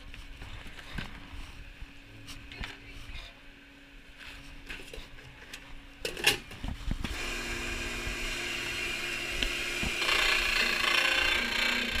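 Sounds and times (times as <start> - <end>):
appliance motor humming and whining: 6.4 - 12.0.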